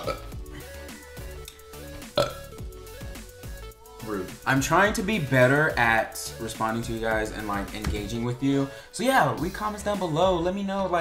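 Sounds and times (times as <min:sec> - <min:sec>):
man burping: 0:00.0 - 0:00.8, 0:02.0 - 0:02.6
quiet background music: 0:00.0 - 0:11.0.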